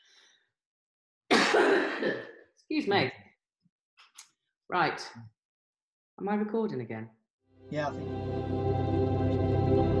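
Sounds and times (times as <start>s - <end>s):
woman coughing: 1.3s - 2.5s.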